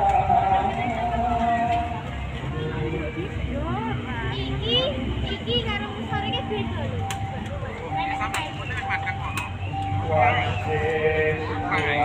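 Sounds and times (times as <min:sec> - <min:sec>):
people chattering: 0:00.0 - 0:12.0
steady high tone: 0:00.0 - 0:12.0.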